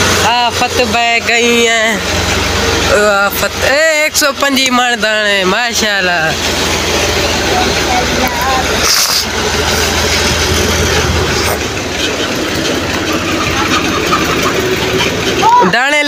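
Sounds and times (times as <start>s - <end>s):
vehicle engine running: 0.0s - 16.0s.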